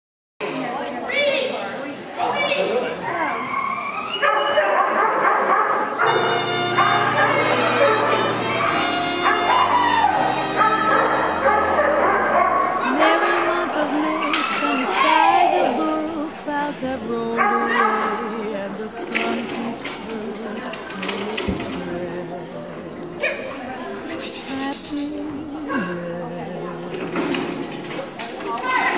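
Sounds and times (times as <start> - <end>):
dog barking and yelping: 4.1 - 6.2, 6.8 - 12.8
music: 6.0 - 28.9
song with vibrato vocals: 12.7 - 28.2.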